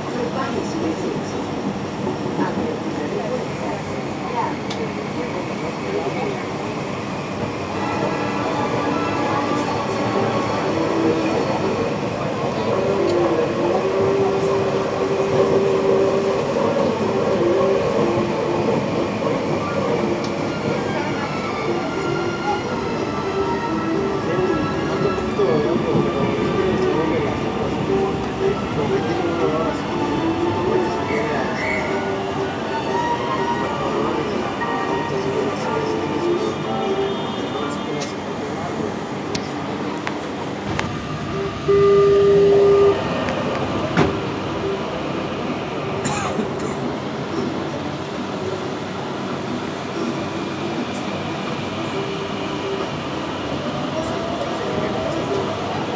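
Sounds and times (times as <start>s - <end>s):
train whine shifting in pitch: 3.0s - 55.9s.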